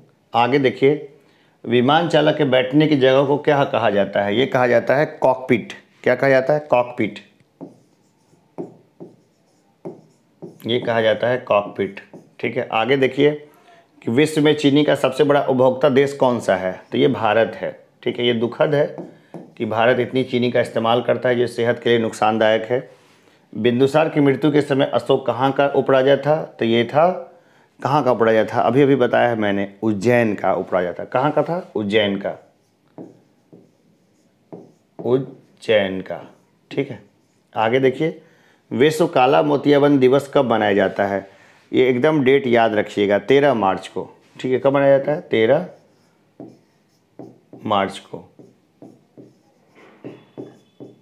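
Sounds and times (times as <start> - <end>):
pen strokes on display board: 7.6 - 11.0, 11.9 - 12.6, 18.7 - 20.1, 31.3 - 37.6, 45.5 - 51.0
soft knocks: 48.4 - 51.0.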